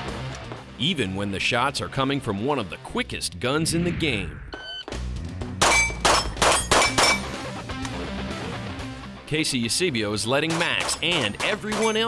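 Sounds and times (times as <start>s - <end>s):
background music: 0.0s - 12.0s
pistol shots: 5.6s - 7.4s, 10.5s - 12.0s
steel target clanging: 5.6s - 7.4s, 10.5s - 12.0s.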